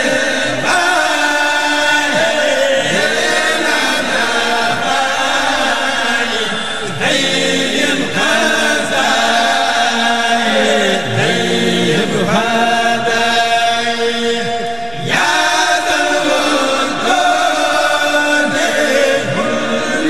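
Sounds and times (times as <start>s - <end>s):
men chanting in unison: 0.0s - 20.0s.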